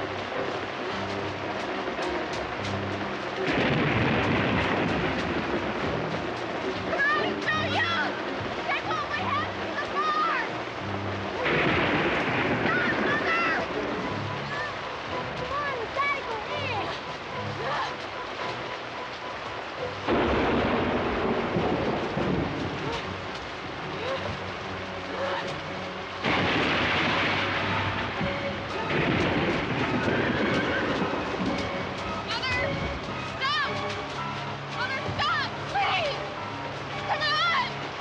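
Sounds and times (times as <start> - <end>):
heavy rain hissing: 0.0 - 38.0
thunder crashing: 2.4 - 10.0, 11.2 - 17.0, 20.0 - 35.3.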